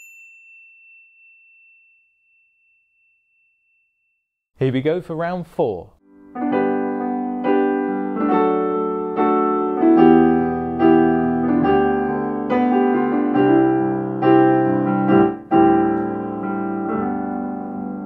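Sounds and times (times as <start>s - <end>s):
digital piano chords: 6.0s - 18.0s.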